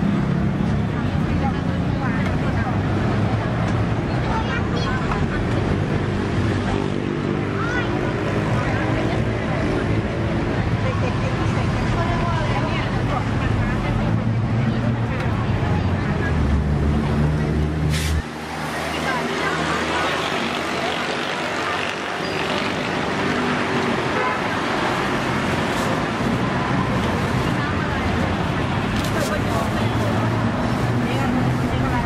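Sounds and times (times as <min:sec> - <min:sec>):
voices chattering: 0:00.0 - 0:32.0.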